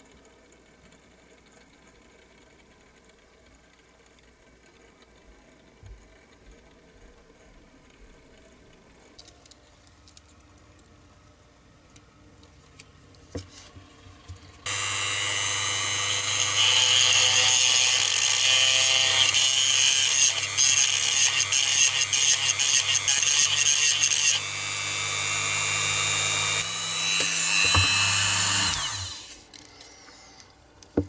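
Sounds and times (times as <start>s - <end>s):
rotary tool grinding metal: 14.7s - 29.6s.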